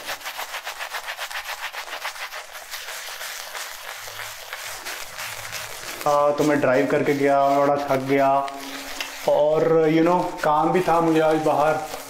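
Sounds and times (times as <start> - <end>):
shaving brush wet swishing: 0.0 - 12.0.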